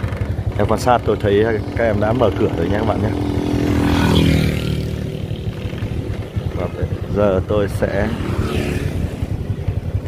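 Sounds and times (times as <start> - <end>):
motorbike engine running: 0.0 - 10.0
motorcycle passing by: 0.0 - 10.0.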